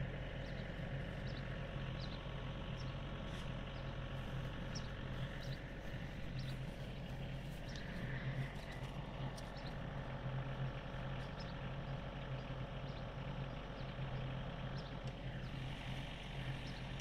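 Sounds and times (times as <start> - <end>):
low engine hum: 0.0 - 17.0.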